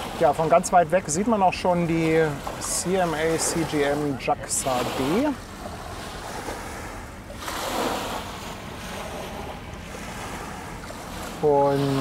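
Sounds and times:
small waves washing onto beach: 0:00.0 - 0:12.0.

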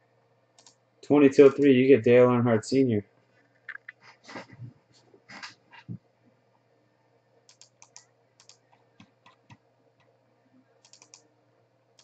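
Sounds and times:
faint computer mouse clicks: 0:00.6 - 0:00.8, 0:07.5 - 0:10.1, 0:10.8 - 0:11.2.

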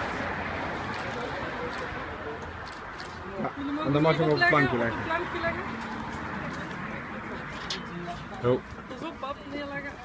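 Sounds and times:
murmur of people chatting: 0:00.0 - 0:10.0.

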